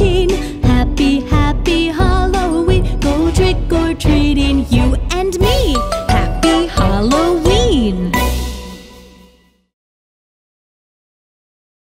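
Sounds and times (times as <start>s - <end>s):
person singing: 0.0s - 8.6s
bouncy backing music with chimes: 0.0s - 9.3s.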